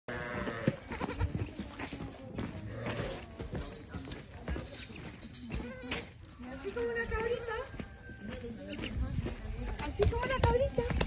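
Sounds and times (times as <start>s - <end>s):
goat kid bleating: 0.1s - 1.5s
footsteps on gravelly dirt: 0.1s - 11.0s.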